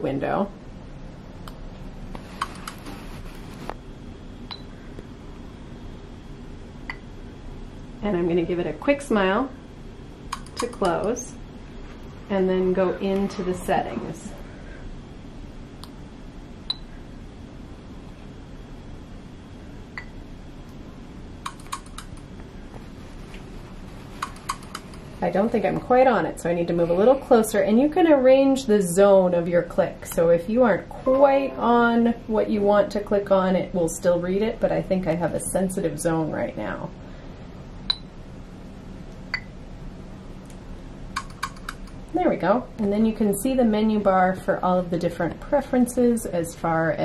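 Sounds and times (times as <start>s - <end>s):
low room hum: 0.0s - 47.0s
computer clicks: 21.4s - 22.2s.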